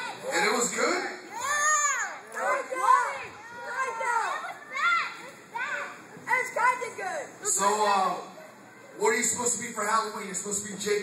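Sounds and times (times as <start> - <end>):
children shouting: 0.0 - 0.6, 1.3 - 7.1.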